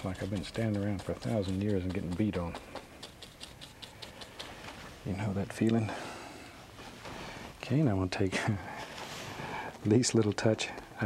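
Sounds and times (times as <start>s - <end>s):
paintbrush scratchy strokes: 0.0s - 7.6s.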